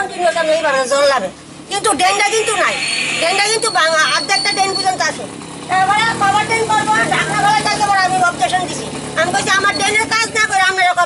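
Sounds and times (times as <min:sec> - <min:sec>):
faint vehicle engine: 0:00.0 - 0:11.0
woman speaking: 0:00.0 - 0:11.0.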